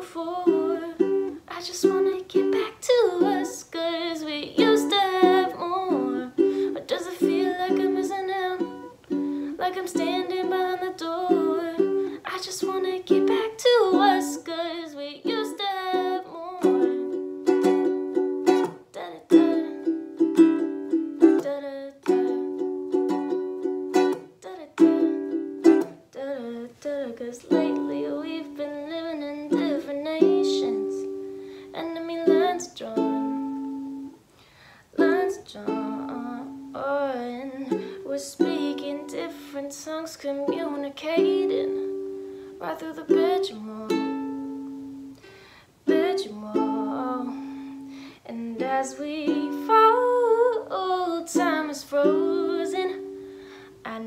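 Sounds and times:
woman singing: 0.0s - 34.2s, 34.9s - 45.2s, 45.8s - 54.0s
ukulele strumming: 0.0s - 34.3s, 35.0s - 54.0s.

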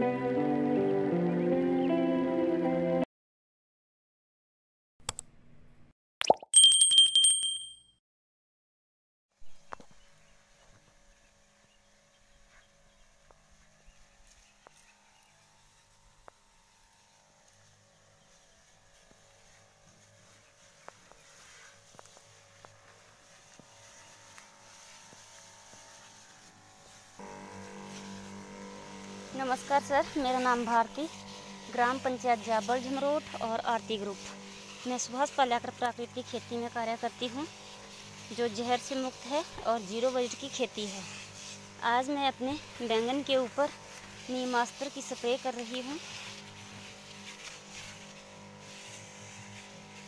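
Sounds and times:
bell ringing with high trill: 6.6s - 8.0s
sprayer pump motor humming: 9.5s - 50.0s.

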